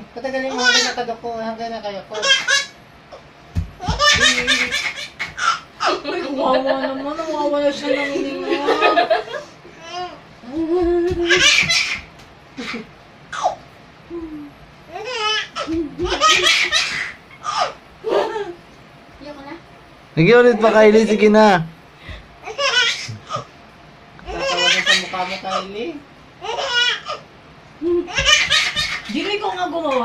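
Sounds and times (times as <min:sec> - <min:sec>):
baby laughing: 0:00.5 - 0:01.0, 0:02.2 - 0:02.7, 0:03.8 - 0:06.3, 0:08.4 - 0:13.6, 0:14.9 - 0:18.6, 0:24.3 - 0:25.7, 0:26.4 - 0:27.2, 0:27.9 - 0:30.0.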